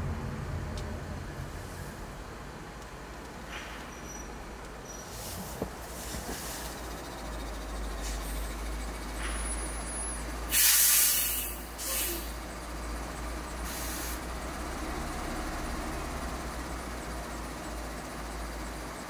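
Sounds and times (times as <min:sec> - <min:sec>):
car driving rumble: 0:00.0 - 0:10.5
loud hiss: 0:10.4 - 0:12.4, 0:13.6 - 0:14.3.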